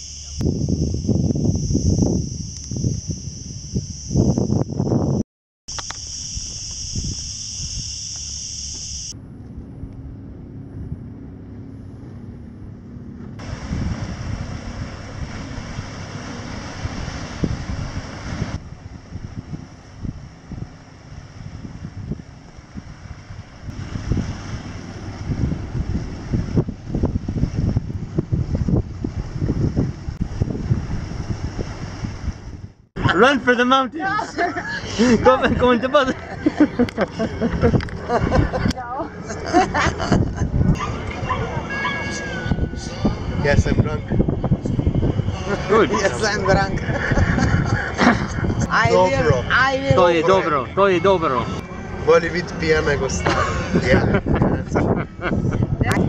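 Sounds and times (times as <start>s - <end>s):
high-pitched hiss: 0.0s - 9.2s
wind buffeting microphone: 0.2s - 5.2s, 8.7s - 33.2s, 34.3s - 50.8s, 51.4s - 56.0s.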